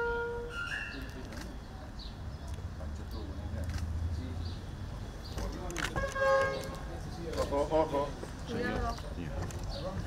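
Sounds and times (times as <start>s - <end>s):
short horn toot: 0.0s - 1.0s.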